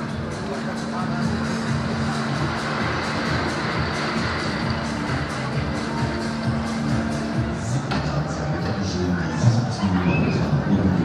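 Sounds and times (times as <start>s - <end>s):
loud fairground music: 0.0s - 11.0s.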